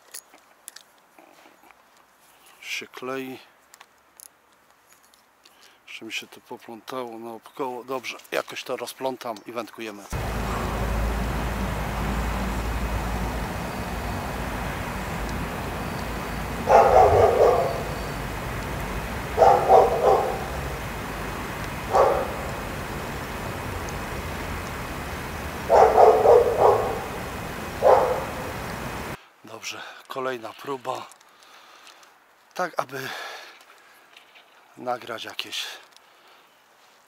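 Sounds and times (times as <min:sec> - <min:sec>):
steady background hiss: 0:00.0 - 0:37.0
dog barking: 0:16.6 - 0:18.2, 0:19.2 - 0:20.7, 0:21.9 - 0:22.7, 0:25.7 - 0:27.2, 0:27.8 - 0:28.6.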